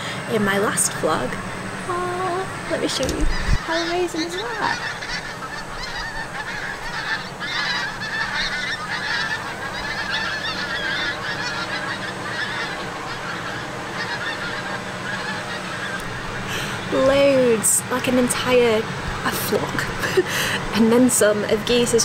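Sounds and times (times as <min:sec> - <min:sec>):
geese honking: 0:00.6 - 0:22.0.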